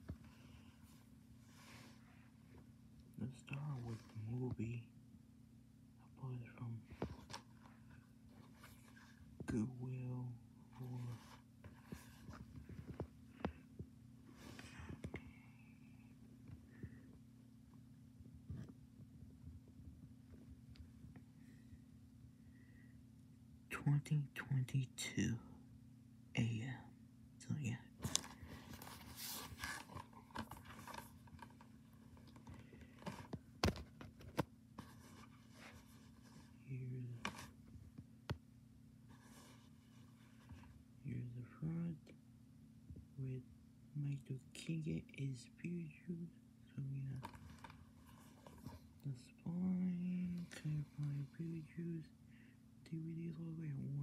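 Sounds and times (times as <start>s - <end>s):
low steady hum: 0.0s - 54.0s
low voice: 3.2s - 4.9s, 6.0s - 7.0s, 9.4s - 11.3s, 23.7s - 25.6s, 36.6s - 37.3s, 41.0s - 42.2s, 43.2s - 47.2s, 49.0s - 52.1s, 52.8s - 54.0s
plastic case being handled: 6.9s - 9.5s, 10.8s - 13.8s, 28.0s - 36.5s, 37.1s - 38.4s, 47.1s - 49.0s
faint rustling: 10.6s - 17.8s, 28.0s - 38.2s, 39.0s - 40.9s, 47.1s - 52.5s.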